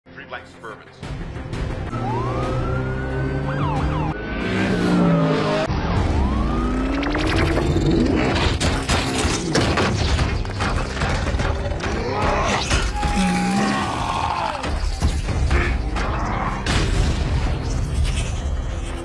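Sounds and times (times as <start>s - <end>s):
film music: 0.1s - 19.0s
police sirens wailing: 1.8s - 8.4s
car engines: 1.9s - 8.6s
sharp impacts and crashes: 5.8s - 19.0s.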